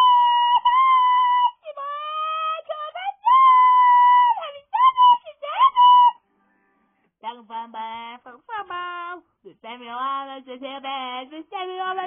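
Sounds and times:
person singing: 0.0 - 6.2.

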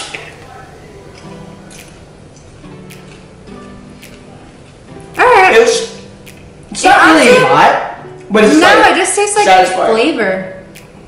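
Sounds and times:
soft music with low notes: 0.0 - 11.0.

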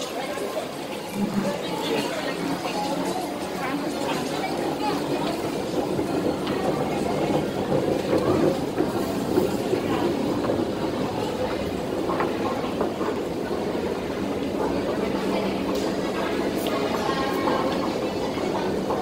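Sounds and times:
faint crowd noise: 0.0 - 19.0
machinery rumble: 0.1 - 19.0.

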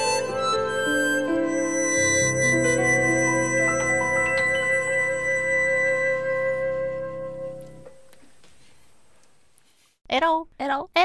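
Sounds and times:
harmonica: 0.0 - 8.0
keyboard: 0.0 - 8.2
saxophone: 0.0 - 8.2.

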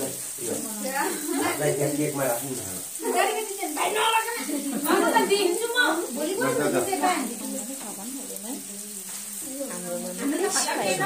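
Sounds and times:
faint voices in a room: 0.0 - 11.0
steady high hiss: 0.0 - 11.0.

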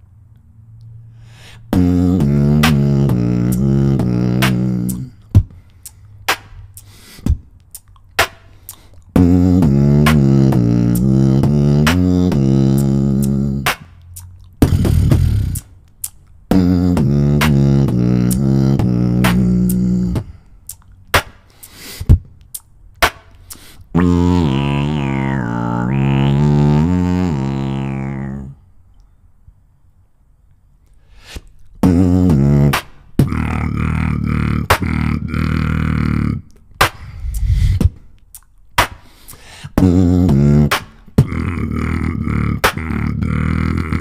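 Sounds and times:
person beatboxing into microphone: 1.4 - 28.6, 31.0 - 44.0.

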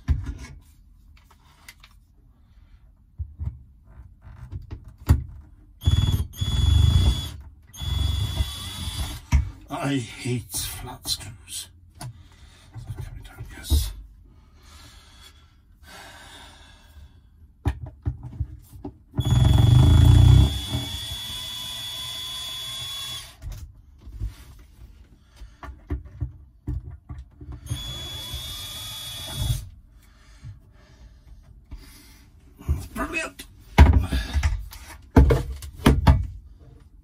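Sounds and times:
cordless drill whining: 5.8 - 9.3, 19.2 - 23.4, 27.6 - 29.7.

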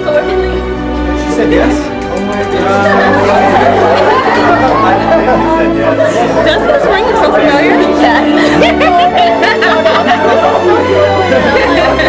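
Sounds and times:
music with sustained tones: 0.0 - 12.0
overlapping chatter: 0.0 - 12.0.

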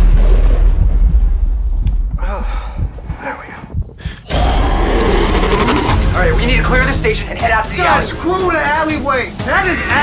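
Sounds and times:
deep low rumble: 0.0 - 6.6.

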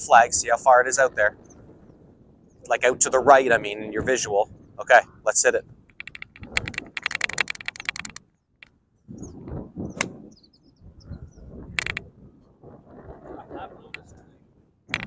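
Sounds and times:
fast run of clicks: 5.9 - 8.8, 11.7 - 12.1.

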